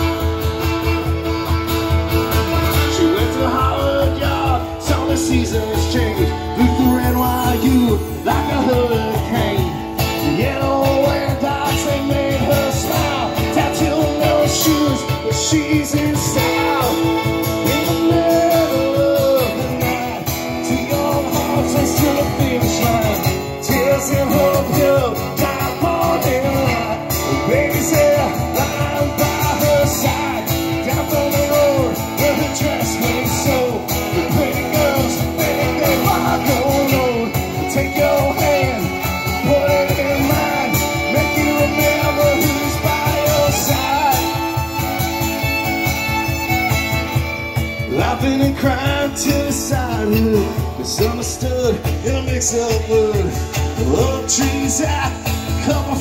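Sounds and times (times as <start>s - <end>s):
cajon beat: 0.0s - 56.0s
fiddle: 0.0s - 56.0s
strummed acoustic guitar: 0.0s - 56.0s.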